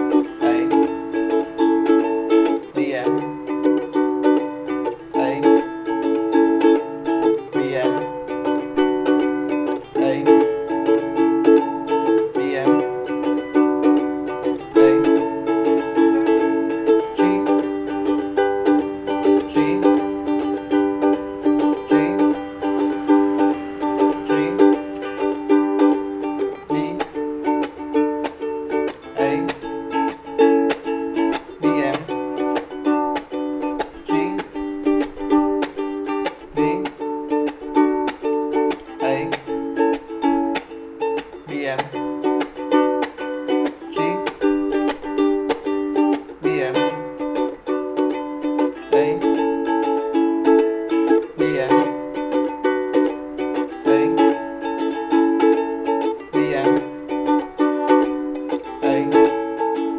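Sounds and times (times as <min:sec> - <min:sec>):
ukulele strumming: 0:00.0 - 0:59.9.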